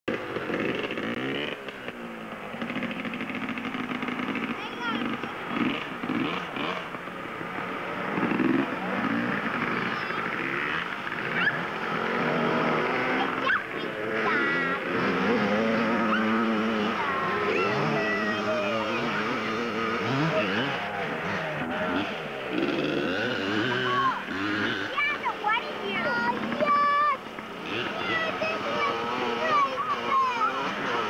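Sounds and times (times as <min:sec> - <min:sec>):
small two-stroke engine running: 0:00.1 - 0:31.0.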